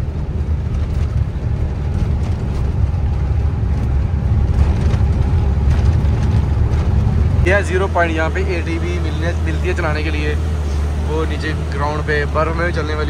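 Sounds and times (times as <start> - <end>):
cab rattling: 0.0 - 13.0
truck engine and road noise: 0.0 - 13.0.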